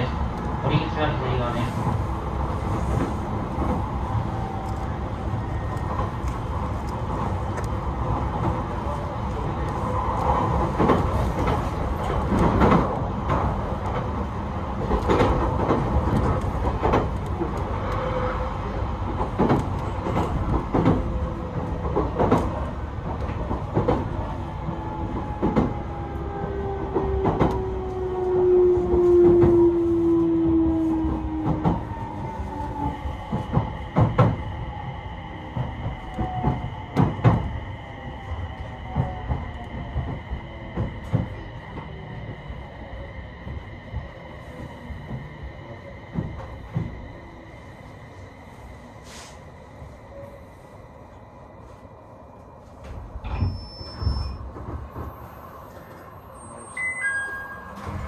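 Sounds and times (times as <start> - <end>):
train running rumble: 0.0 - 56.4.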